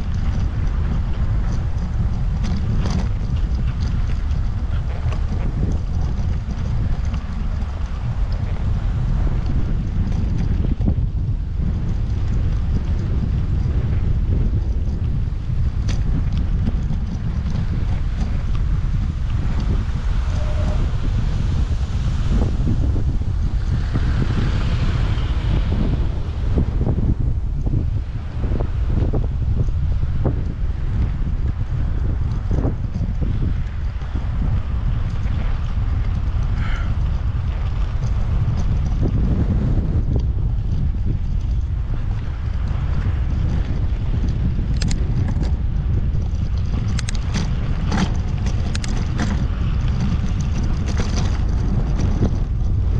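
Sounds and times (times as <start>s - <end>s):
bicycle tyres on sandy dirt: 0.0s - 52.9s
wind buffeting microphone: 0.0s - 52.9s.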